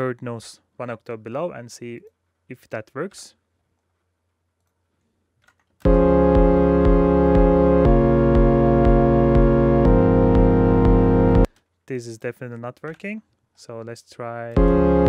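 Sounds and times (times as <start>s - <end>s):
synth pad chords: 5.8s - 11.5s, 14.6s - 15.0s.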